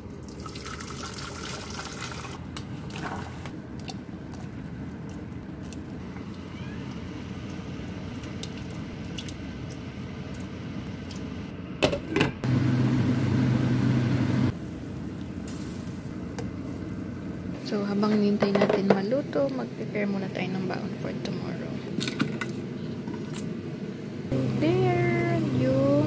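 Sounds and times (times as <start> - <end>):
loud low hum: 12.4 - 15.2, 24.0 - 26.0.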